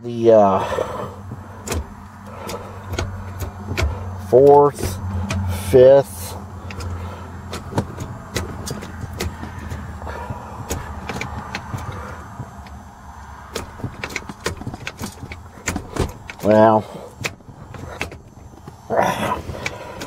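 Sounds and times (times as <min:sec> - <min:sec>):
gear lever clicks and clunks: 0:01.2 - 0:20.0.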